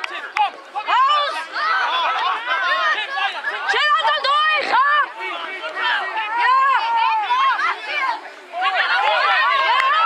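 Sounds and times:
children shouting excitedly: 0:00.7 - 0:10.0.

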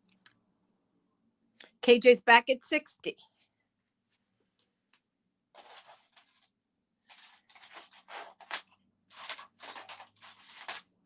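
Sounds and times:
faint rustling and scraping: 0:03.3 - 0:11.0.

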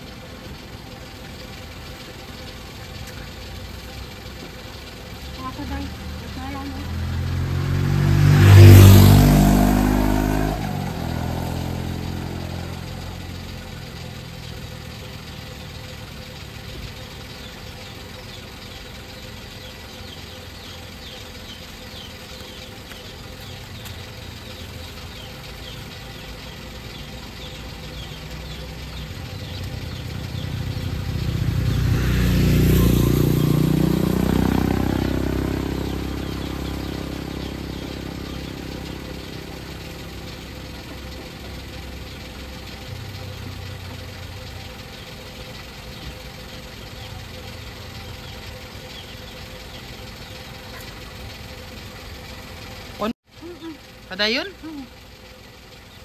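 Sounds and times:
vehicles passing: 0:00.0 - 0:56.0.

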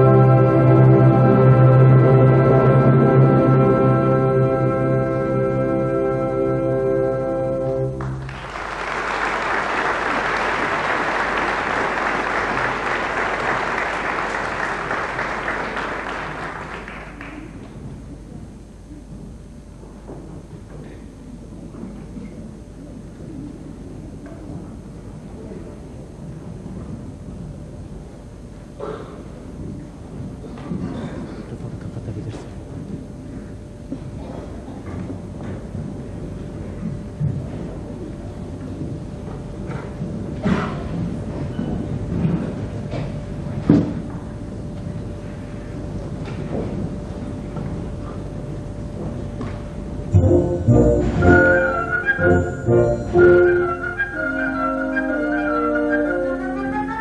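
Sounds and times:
orchestral chord: 0:00.0 - 0:08.4, 0:50.1 - 0:57.0
audience applause: 0:08.0 - 0:17.7.

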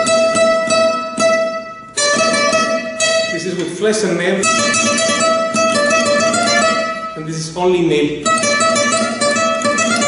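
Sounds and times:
flamenco guitar: 0:00.0 - 0:10.0.

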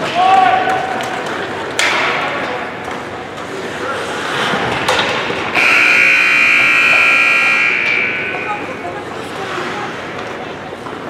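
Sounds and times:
faint voices: 0:00.0 - 0:06.0, 0:06.6 - 0:11.0
ice rink buzzer: 0:05.5 - 0:08.9.

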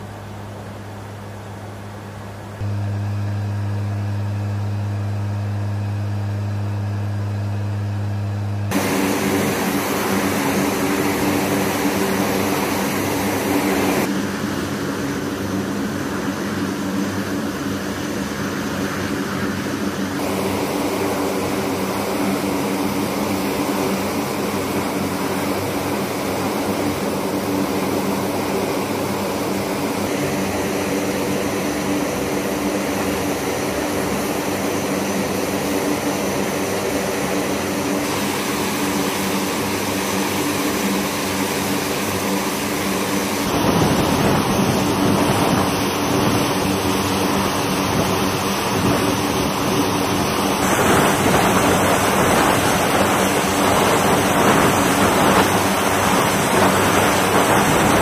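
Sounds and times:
steady hum: 0:00.0 - 0:58.0
turboprop engines droning: 0:00.0 - 0:58.0.

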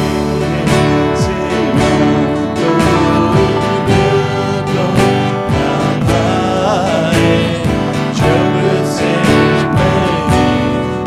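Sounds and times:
acoustic guitar strummed: 0:00.0 - 0:11.0
man singing: 0:00.0 - 0:11.0.

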